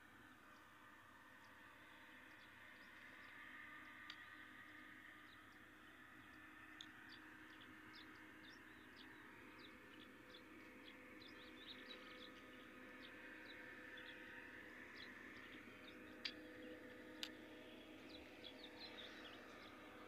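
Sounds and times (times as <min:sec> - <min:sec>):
faint steady hum: 0:00.0 - 0:20.0
small birds chirping: 0:01.4 - 0:20.0.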